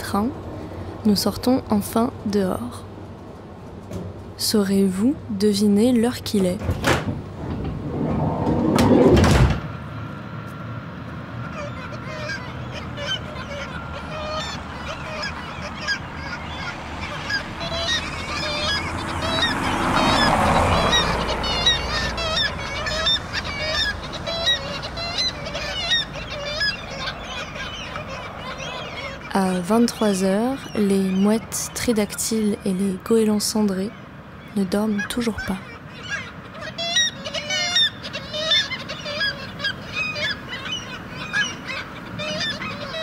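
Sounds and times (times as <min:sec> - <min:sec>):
loud rushing noise: 0:07.1 - 0:11.0
gulls calling: 0:11.2 - 0:43.0.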